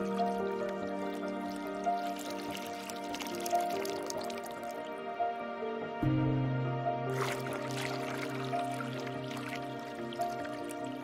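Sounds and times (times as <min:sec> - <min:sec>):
water dripping and trickling: 0:00.0 - 0:05.1, 0:07.1 - 0:11.0
calm ambient music: 0:00.0 - 0:11.0.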